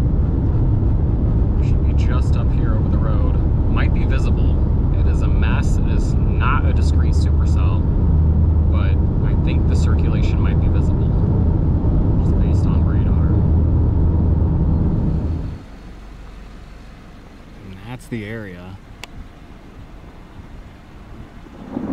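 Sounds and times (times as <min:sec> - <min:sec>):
car cabin road and engine drone: 0:00.0 - 0:21.9
man talking: 0:01.6 - 0:07.9, 0:08.7 - 0:11.2, 0:12.2 - 0:13.4, 0:17.6 - 0:18.9.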